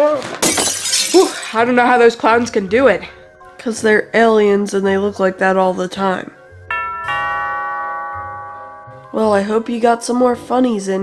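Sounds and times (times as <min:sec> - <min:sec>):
two-note doorbell chime: 0:06.7 - 0:09.8.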